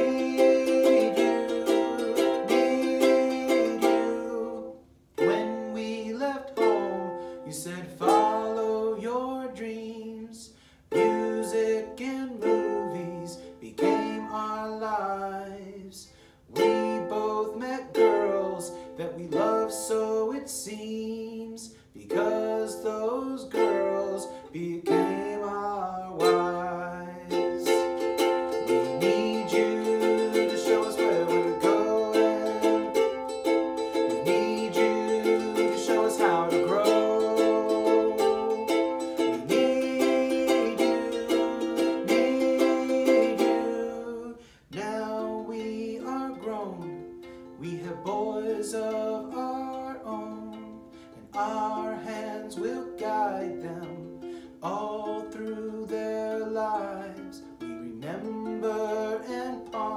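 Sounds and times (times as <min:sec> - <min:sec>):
man singing: 0:00.0 - 0:59.9
ukulele strumming: 0:00.0 - 0:59.9.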